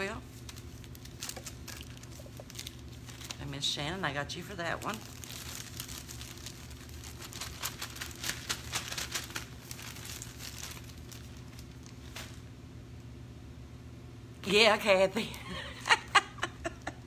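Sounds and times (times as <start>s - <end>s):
plastic packaging crinkling: 0.0s - 12.6s
low steady hum: 0.0s - 17.0s.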